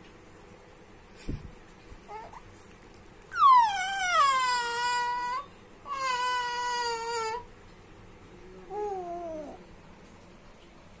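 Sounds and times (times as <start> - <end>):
infant's high-pitched calls: 3.3 - 7.4.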